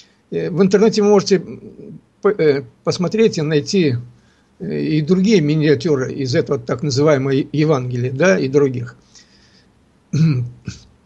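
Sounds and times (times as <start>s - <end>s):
man breathing in: 4.2s - 4.6s, 9.0s - 9.8s
man clearing throat: 10.1s - 10.9s.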